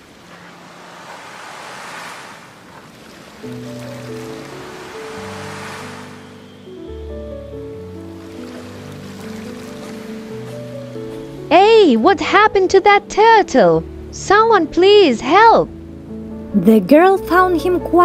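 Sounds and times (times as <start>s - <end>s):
waves washing onto sandy shore: 0.0s - 6.4s, 8.1s - 11.5s
soft background music: 3.4s - 18.0s.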